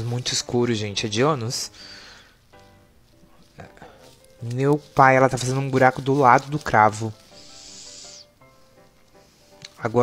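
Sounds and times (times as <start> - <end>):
faint background music: 0.0 - 10.0
short high hiss: 7.3 - 8.4.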